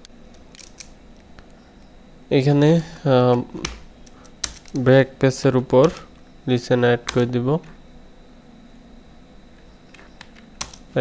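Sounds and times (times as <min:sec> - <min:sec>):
low steady room background: 0:00.0 - 0:11.0
keyboard keystrokes: 0:03.3 - 0:04.8, 0:05.8 - 0:06.1, 0:09.9 - 0:10.8.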